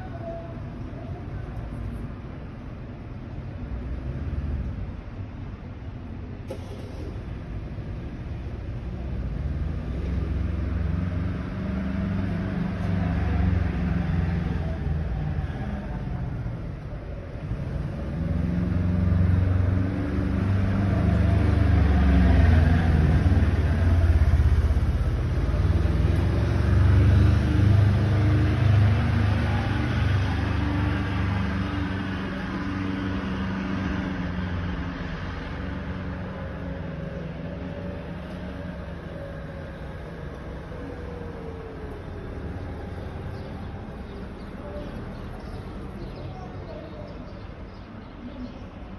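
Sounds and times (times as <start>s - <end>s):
car engines running: 0.6s - 48.4s.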